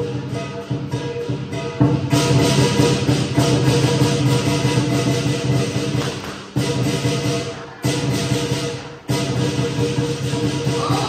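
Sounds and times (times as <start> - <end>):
crashing cymbals: 0.0 - 11.0
drum: 0.0 - 11.0.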